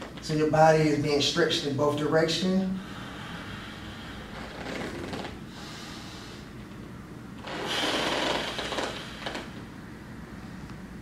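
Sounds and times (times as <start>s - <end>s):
man breathing deeply: 2.7s - 6.9s, 7.5s - 9.8s.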